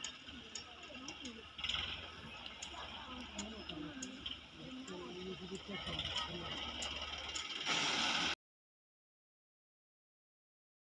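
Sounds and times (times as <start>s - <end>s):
diesel engine running: 0.0s - 8.4s
loud hiss: 7.5s - 8.4s.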